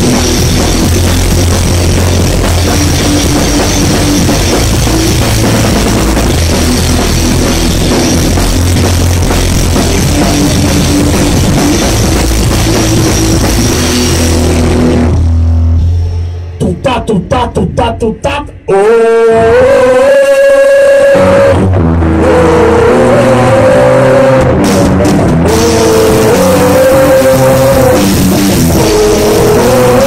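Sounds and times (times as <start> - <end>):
electric guitar: 0.0 - 16.6, 18.4 - 30.0
drum kit: 0.0 - 18.7, 20.2 - 30.0
electric bass: 0.0 - 30.0.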